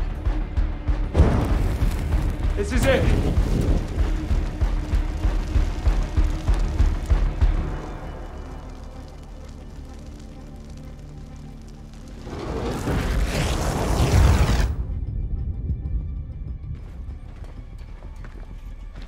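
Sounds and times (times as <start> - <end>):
dramatic film score: 0.0 - 19.0.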